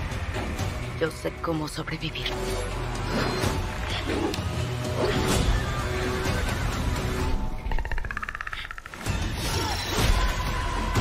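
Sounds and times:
film trailer music: 0.0 - 11.0.

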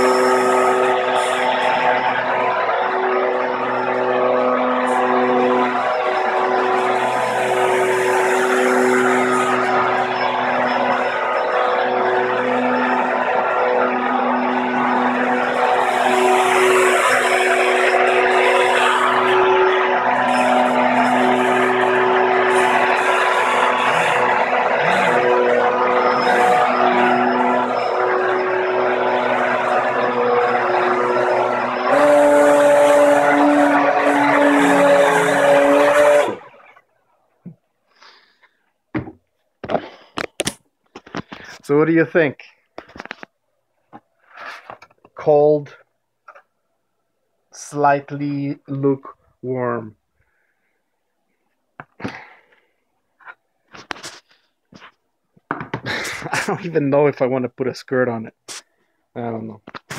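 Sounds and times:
electric fan motors whirring: 0.0 - 36.8.

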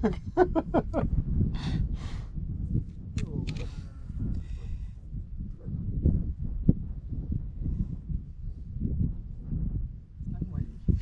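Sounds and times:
man laughing: 0.0 - 1.1
steady low rumble: 0.0 - 11.0.

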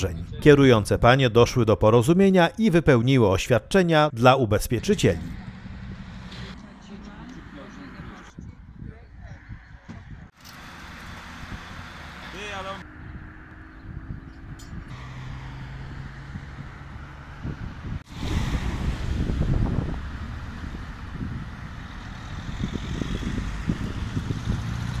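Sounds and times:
low traffic rumble: 0.0 - 25.0
engine hum: 4.6 - 25.0
wind buffeting microphone: 5.1 - 10.4, 12.8 - 25.0.

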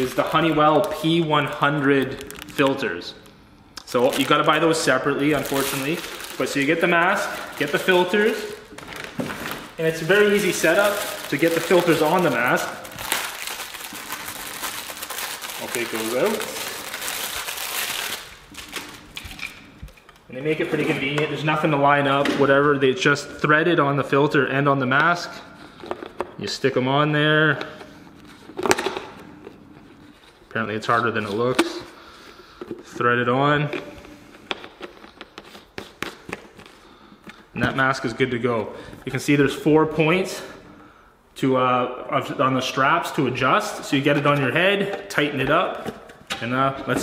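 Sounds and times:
plastic wrapper crinkling: 2.0 - 20.3.

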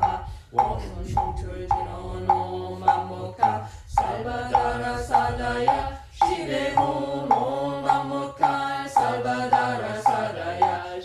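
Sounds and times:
person chanting on held notes: 0.0 - 11.0
wooden strikes beat: 0.0 - 11.0.

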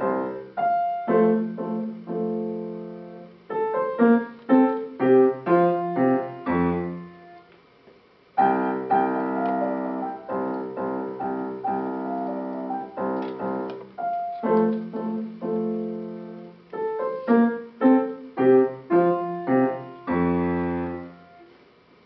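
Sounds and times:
grand piano chords: 0.0 - 7.6, 8.4 - 21.6.

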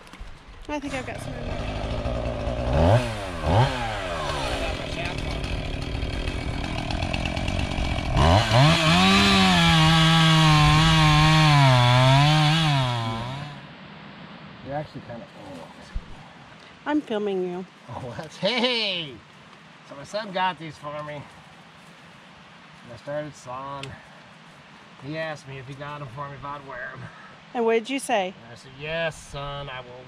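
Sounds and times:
chainsaw cutting through log: 0.8 - 13.6.

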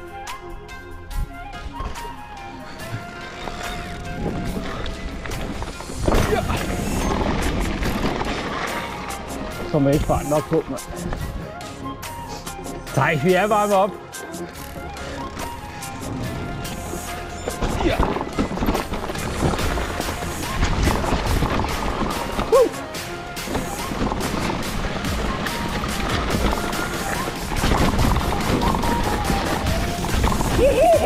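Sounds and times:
background music: 0.0 - 31.0
bike tyres on dirt trail: 1.2 - 31.0
bike clicking and rattling: 1.7 - 11.5, 12.9 - 31.0
wind noise: 2.8 - 8.7, 16.0 - 22.6, 23.4 - 31.0.

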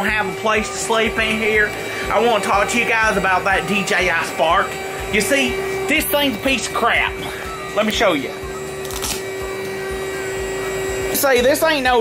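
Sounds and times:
air mattress pump motor hum: 0.0 - 12.0.

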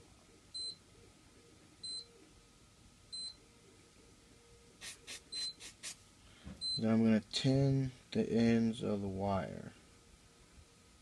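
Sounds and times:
short hissing sounds: 4.8 - 6.0.

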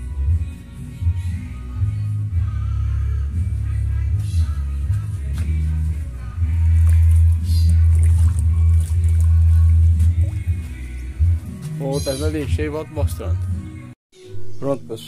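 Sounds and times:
music with steady bass line: 0.0 - 14.7.

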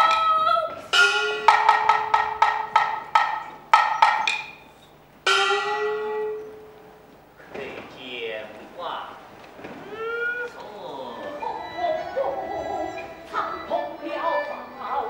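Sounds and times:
person singing: 0.0 - 1.3
wood-block and drum strikes: 0.0 - 6.5
gong ringing: 0.9 - 4.6, 5.2 - 6.9, 11.0 - 15.0.

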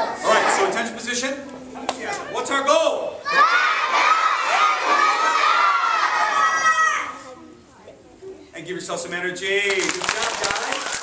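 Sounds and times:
children shouting in chorus: 3.2 - 7.2.

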